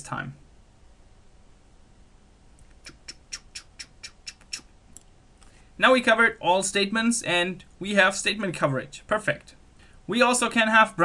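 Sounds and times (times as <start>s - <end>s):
mouse squeaking on desk: 2.7s - 4.7s.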